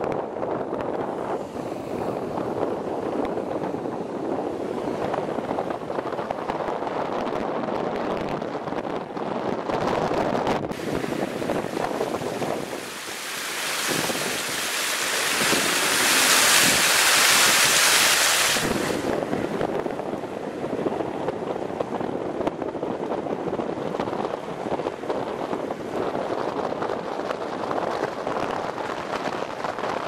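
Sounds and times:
car road and wind noise: 0.0 - 30.0
water rushing over rocks: 10.7 - 19.5.

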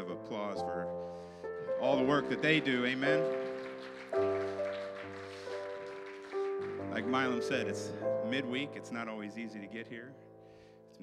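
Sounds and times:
soft keyboard chord: 0.0 - 11.0.

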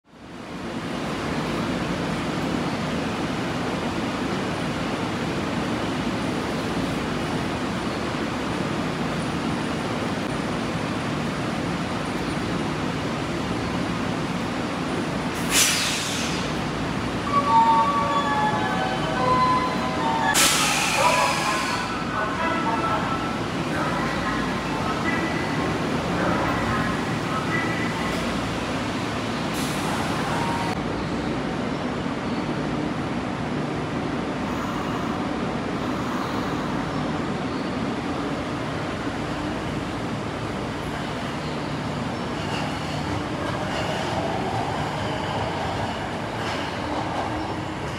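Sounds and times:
sharp hisses of air: 15.4 - 16.5, 20.4 - 21.9.

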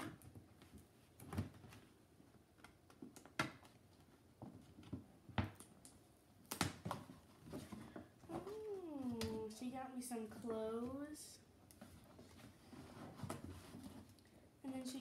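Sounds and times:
drawn-out wavering voice: 8.3 - 9.8.

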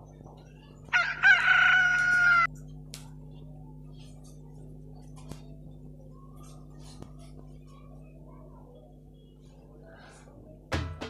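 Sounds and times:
rooster crowing: 0.9 - 2.5.

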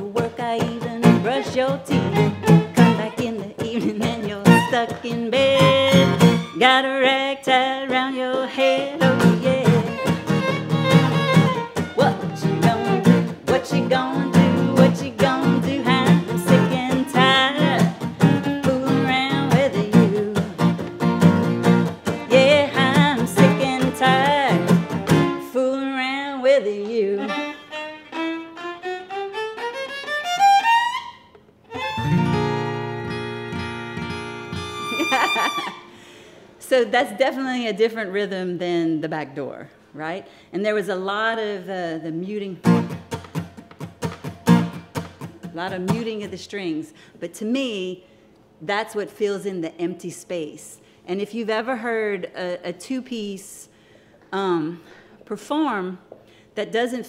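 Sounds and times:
acoustic guitar strumming: 0.0 - 7.1, 7.9 - 25.5, 31.7 - 36.0, 42.6 - 46.3
woman singing: 0.0 - 10.2, 11.8 - 20.8, 22.1 - 27.6, 45.6 - 46.8
fiddle playing: 0.7 - 3.3, 4.0 - 6.8, 8.6 - 25.5, 26.8 - 36.0.

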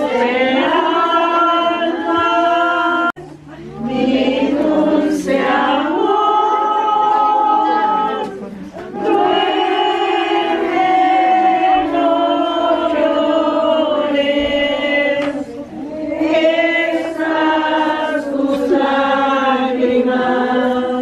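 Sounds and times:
group singing a hymn: 0.0 - 21.0.

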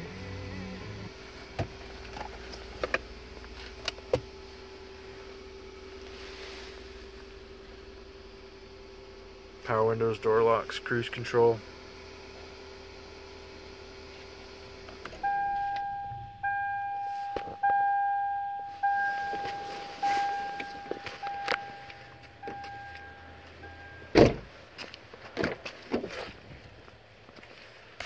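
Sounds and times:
power window motor running: 0.0 - 9.1, 18.7 - 24.4
car warning chime dings: 15.2 - 24.2
loud thump: 24.1 - 24.5.

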